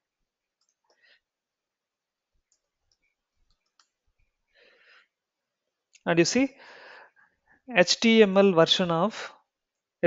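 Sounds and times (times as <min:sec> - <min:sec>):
keyboard and mouse clicks: 0:02.5 - 0:04.0
soft breath: 0:04.5 - 0:05.2, 0:06.6 - 0:07.7.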